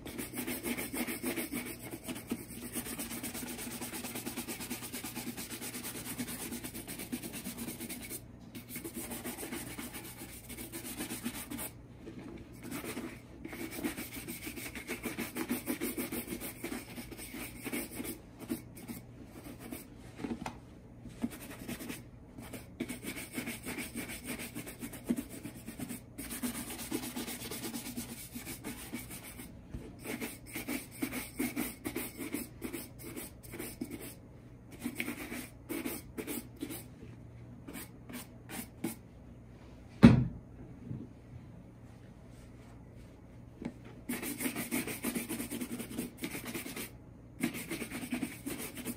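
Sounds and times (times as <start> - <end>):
loud thump: 40.0 - 40.4.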